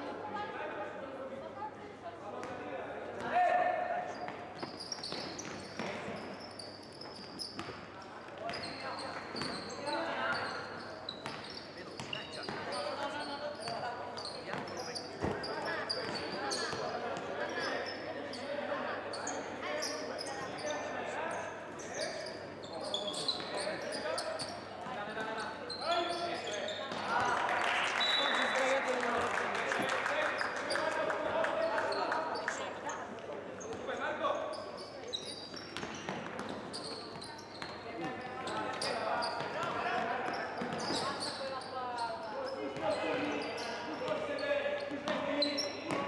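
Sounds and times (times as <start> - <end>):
sneakers squeaking: 4.0 - 46.0
players and coaches calling out: 8.5 - 35.4, 36.0 - 46.0.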